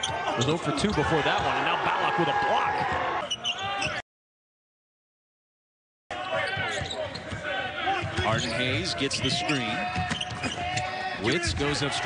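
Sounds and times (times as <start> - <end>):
voices on the court: 0.0 - 4.0, 6.1 - 12.0.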